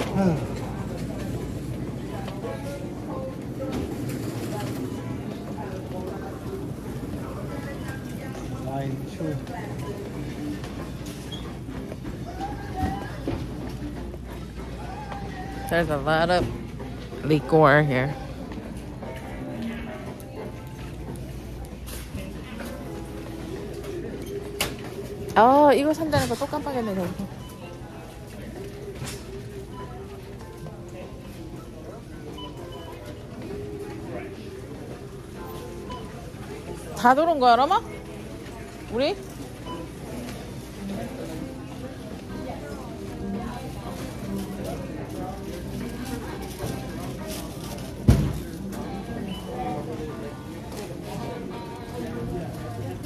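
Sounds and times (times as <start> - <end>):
faint background music: 0.0 - 53.0
faint background voices: 0.0 - 53.0
low store hum: 0.0 - 53.0.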